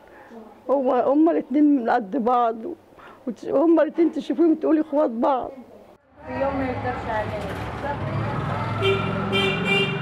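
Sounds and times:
woman talking: 0:00.2 - 0:08.2
vehicle horn toots: 0:08.8 - 0:10.0.

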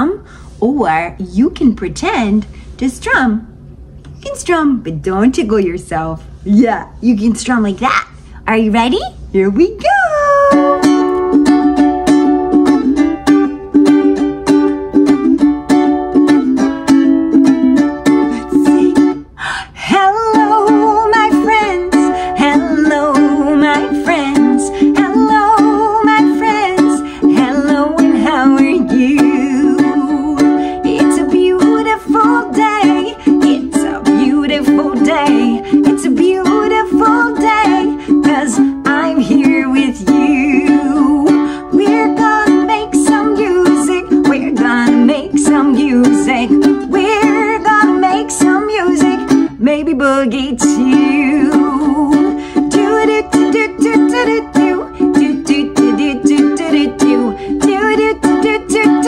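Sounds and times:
woman singing: 0:09.6 - 0:14.3, 0:16.3 - 0:59.0
ukulele strumming: 0:10.1 - 0:59.0.

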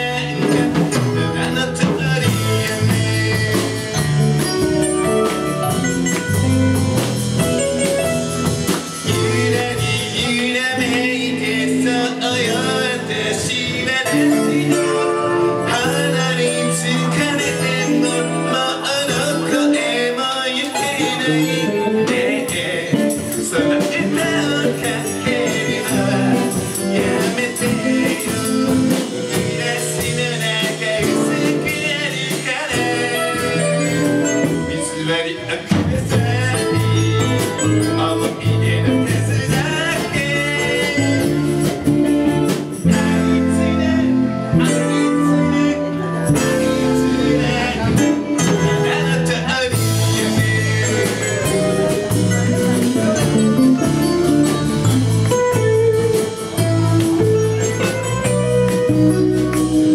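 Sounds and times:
person singing: 0:00.0 - 0:08.1, 0:08.7 - 0:59.9
bass: 0:00.0 - 0:59.9
drum kit beat: 0:00.0 - 0:59.9
guitars playing held melody notes: 0:00.0 - 0:59.9
keyboard: 0:00.0 - 0:59.9
live band playing: 0:00.0 - 0:59.9.

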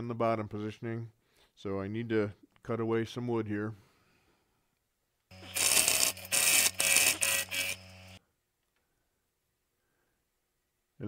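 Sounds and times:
gouge cutting spinning wood: 0:05.3 - 0:08.2
wood lathe motor hum: 0:05.3 - 0:08.2.

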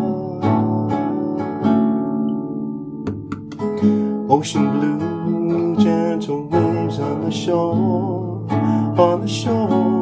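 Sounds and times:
acoustic guitar strummed: 0:00.0 - 0:10.0
guitar string clicks: 0:03.0 - 0:03.8.

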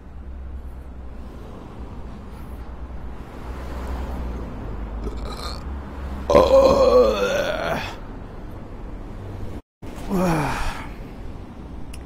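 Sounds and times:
man groaning: 0:06.3 - 0:08.0, 0:10.1 - 0:10.9.

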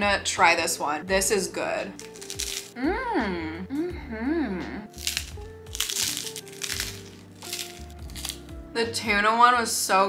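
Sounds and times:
crunchy chewing: 0:02.0 - 0:02.8, 0:04.9 - 0:08.5
person humming: 0:02.8 - 0:05.0.

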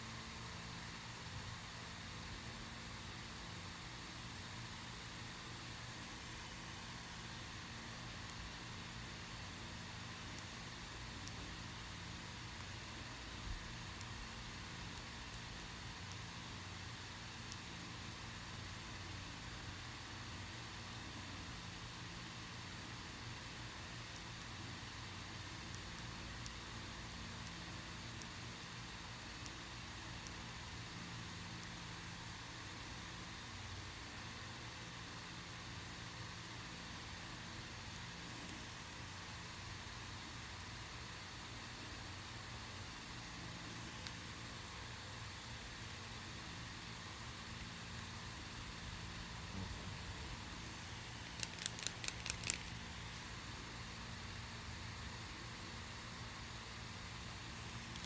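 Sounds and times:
room tone hiss and hum: 0:00.0 - 0:58.0
sharp clicks: 0:51.2 - 0:52.8.

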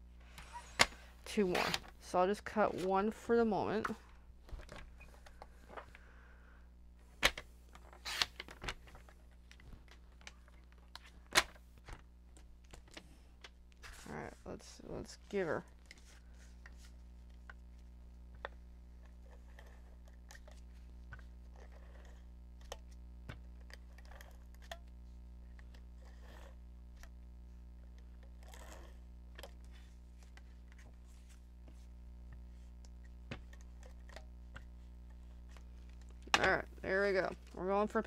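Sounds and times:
low electrical hum: 0:00.0 - 0:38.0.

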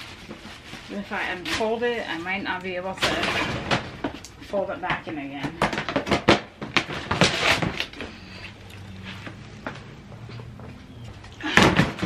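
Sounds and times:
plastic tote scraping: 0:05.6 - 0:08.5.

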